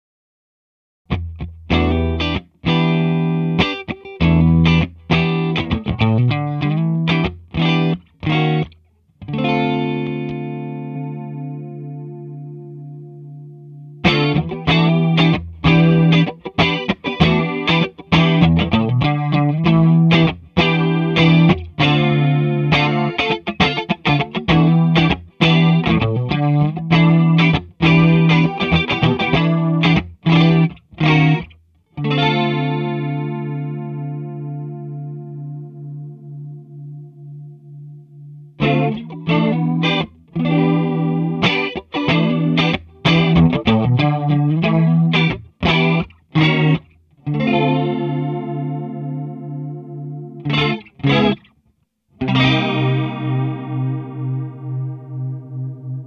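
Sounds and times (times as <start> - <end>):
electric guitar with chorus: 1.1 - 56.0.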